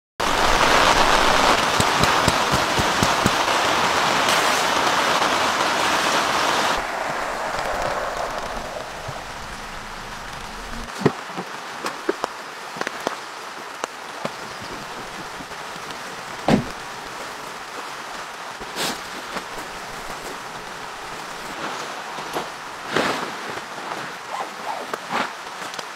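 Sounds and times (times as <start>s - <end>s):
rain falling: 0.2s - 24.3s.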